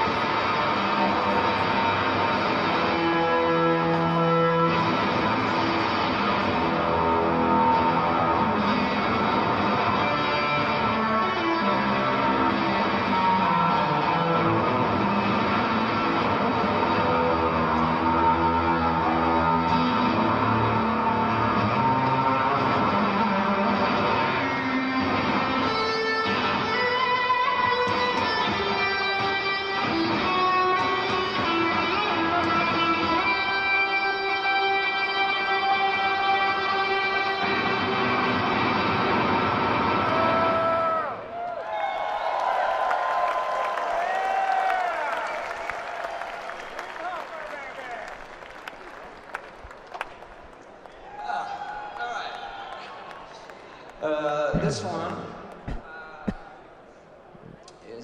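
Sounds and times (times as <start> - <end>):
live electric guitar music: 0.0 - 40.4.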